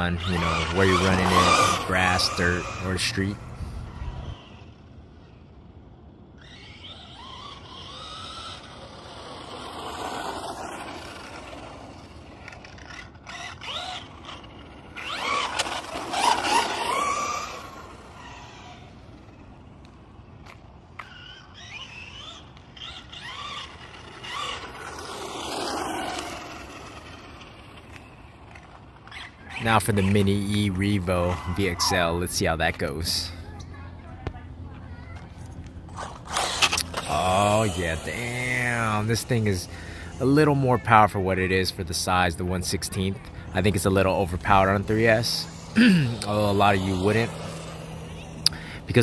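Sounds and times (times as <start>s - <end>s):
electric rc car motor whine: 0.0s - 49.0s.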